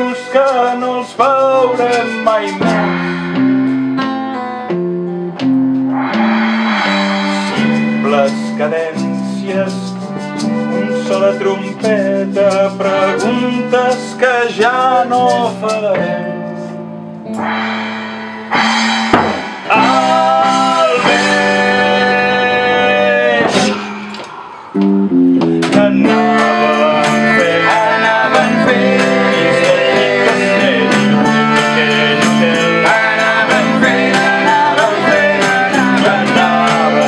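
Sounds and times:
acoustic guitar: 0:00.0 - 0:17.6, 0:24.8 - 0:37.0
percussion: 0:00.0 - 0:37.0
electric bass: 0:02.6 - 0:09.2, 0:22.8 - 0:37.0.

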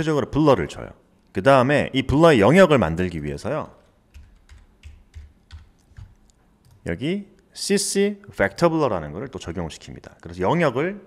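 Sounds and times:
computer keyboard typing: 0:03.8 - 0:06.8.

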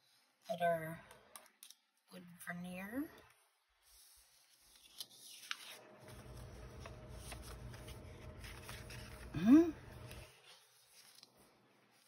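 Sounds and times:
faint low hum: 0:03.1 - 0:12.0
paper rustling: 0:03.8 - 0:12.0.

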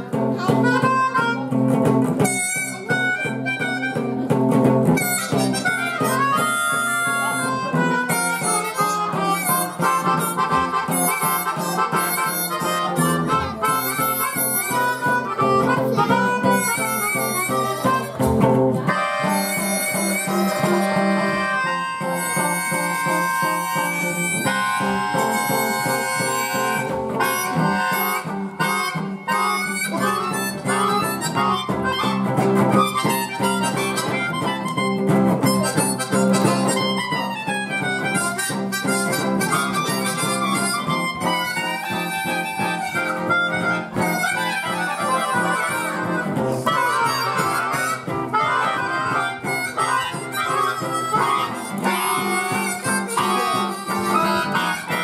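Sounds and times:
guitar accompaniment: 0:00.0 - 0:55.0
harmonica wailing blues lines: 0:00.0 - 0:55.0.

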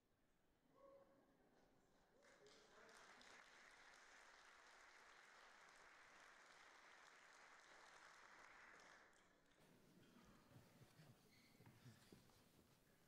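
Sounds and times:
faint applause from large audience: 0:02.0 - 0:11.1.

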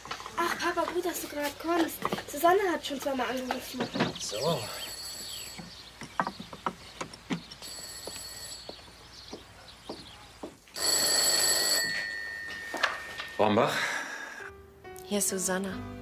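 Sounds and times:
telephone ringing: 0:04.4 - 0:05.7, 0:07.6 - 0:09.0, 0:10.8 - 0:14.5.

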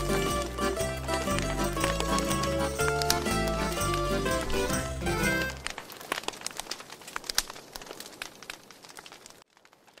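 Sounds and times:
wood fire crackling: 0:00.0 - 0:10.0.

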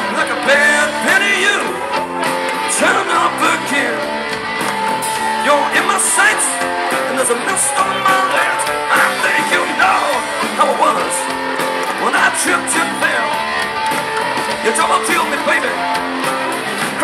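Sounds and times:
bass guitar: 0:00.0 - 0:17.0
electric guitar: 0:00.0 - 0:17.0.

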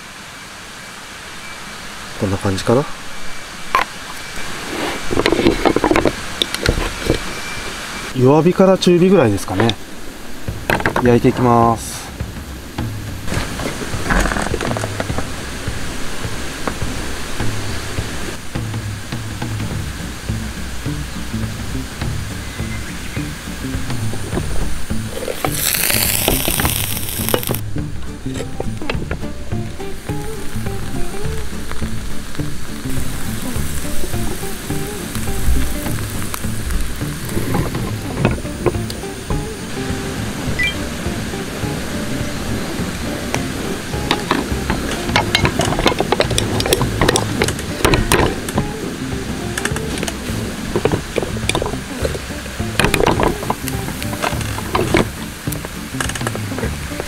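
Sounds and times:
food sizzling: 0:00.0 - 0:57.0
background music: 0:10.4 - 0:57.0.

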